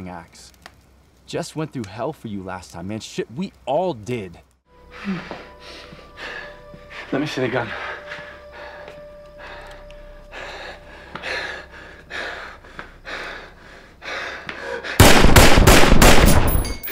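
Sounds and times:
heavy rhythmic breathing: 4.8s - 15.2s
loud rapid gunfire: 15.0s - 16.6s.

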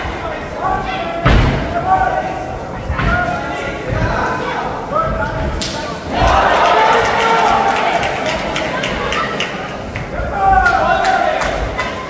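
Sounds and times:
people shouting in a hall: 0.0s - 12.0s
heavy thuds: 1.2s - 1.9s.

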